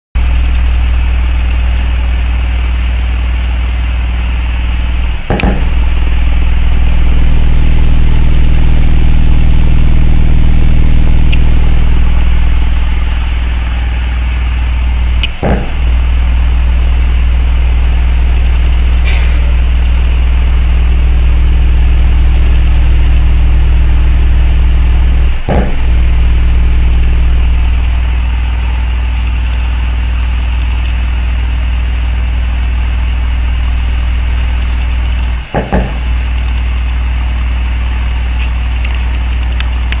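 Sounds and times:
loud deep subwoofer bass: 0.2 - 39.9.

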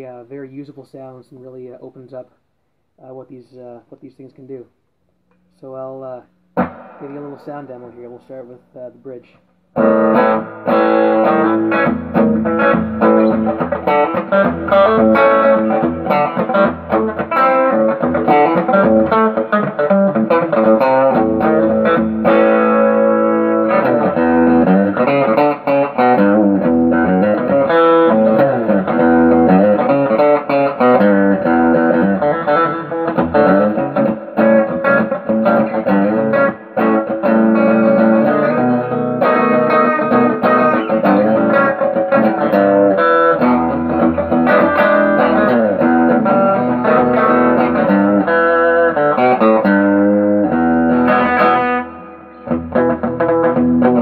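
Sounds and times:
electric guitar lead lines: 5.3 - 54.0.

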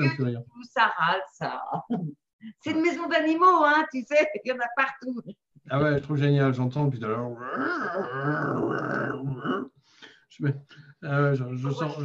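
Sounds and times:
man growling imitating animal: 7.3 - 9.7.

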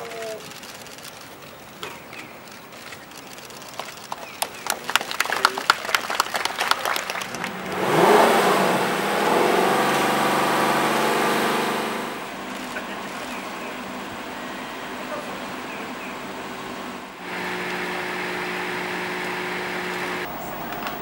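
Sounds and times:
hand clapping: 3.8 - 7.8
car engine starting and revving: 7.0 - 20.3.

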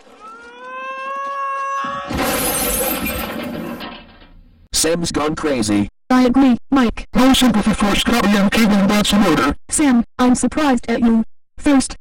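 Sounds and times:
rising held tone: 0.0 - 2.2
glass shattering crash: 2.0 - 4.4.

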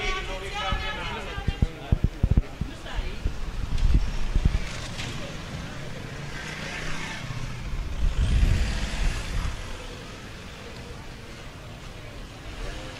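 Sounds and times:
cars driving by: 3.3 - 12.9.

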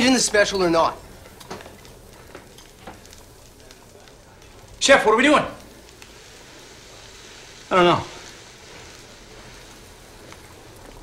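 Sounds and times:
food frying hiss: 0.0 - 11.0.

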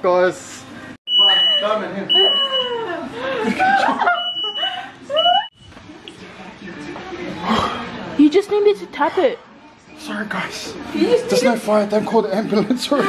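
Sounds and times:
smoke alarm beeping: 1.1 - 2.7, 4.0 - 4.6
people laughing: 1.8 - 5.5, 11.0 - 13.0.

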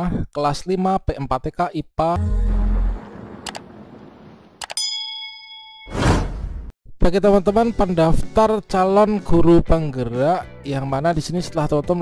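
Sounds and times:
rush of noise: 2.7 - 4.6
bright bell ding: 4.8 - 6.0.

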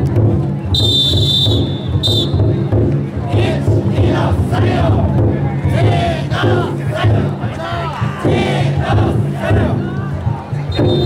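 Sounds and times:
big drum beat: 0.0 - 11.0
crowd: 0.0 - 11.0
people shouting together: 3.3 - 5.1, 5.7 - 10.1.

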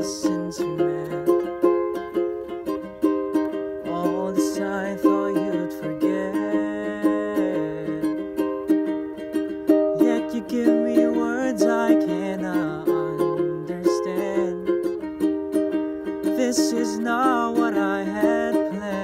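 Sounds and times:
man singing: 0.0 - 2.6, 3.7 - 8.8, 9.7 - 15.3, 16.0 - 19.0
ukulele strumming chords: 0.0 - 19.0.

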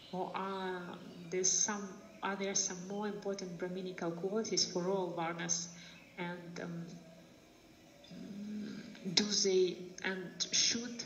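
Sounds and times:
person humming mmm: 8.1 - 9.0.

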